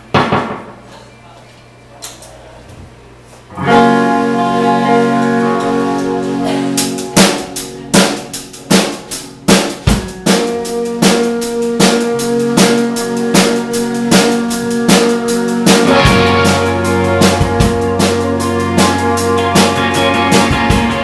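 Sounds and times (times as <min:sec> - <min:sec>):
electric guitars and bass: 0:03.5 - 0:21.0
rock band playing live: 0:03.5 - 0:21.0
drum kit beat: 0:03.6 - 0:21.0.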